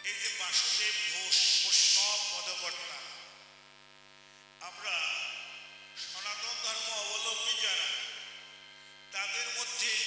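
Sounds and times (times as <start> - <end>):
man speaking over loudspeaker: 0.0 - 3.3, 4.6 - 8.5, 9.1 - 10.0
public address system hum: 0.0 - 10.0.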